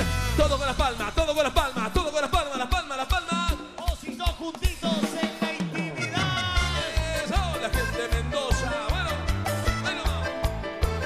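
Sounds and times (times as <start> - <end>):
bass: 0.0 - 2.9, 6.1 - 11.0
drums beat: 0.0 - 11.0
sliding lead melody: 6.0 - 11.0.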